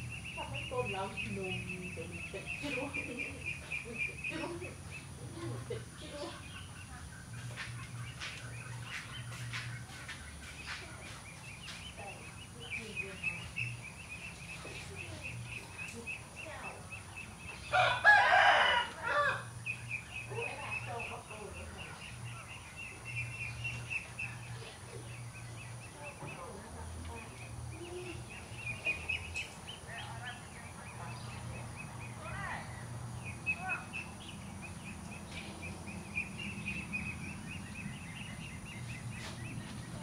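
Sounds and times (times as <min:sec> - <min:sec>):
rooster crowing: 0:17.7 - 0:19.6.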